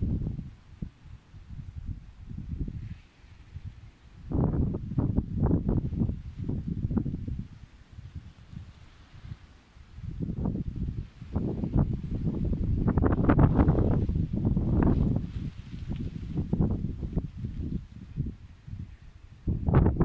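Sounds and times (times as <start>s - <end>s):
strong wind buffeting microphone: 0.0s - 20.0s.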